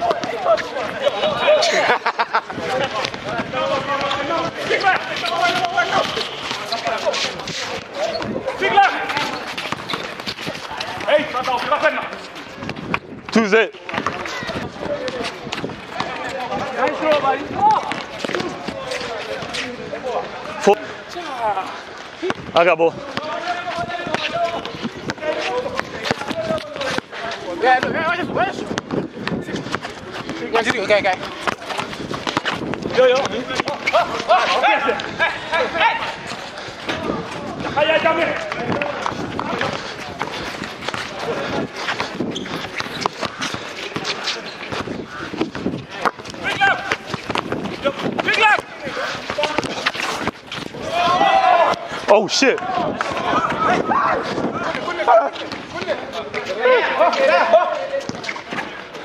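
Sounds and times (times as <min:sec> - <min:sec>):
basketball bouncing on concrete: 0:00.0 - 0:00.7, 0:02.8 - 0:12.0, 0:13.8 - 0:19.5, 0:22.2 - 0:34.3, 0:36.3 - 0:51.9, 0:58.0 - 0:58.7
players shouting: 0:00.0 - 0:12.6, 0:13.8 - 0:58.9.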